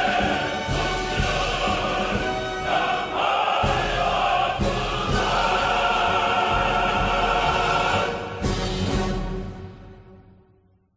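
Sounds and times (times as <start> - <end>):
choir singing with music: 0.0 - 10.6.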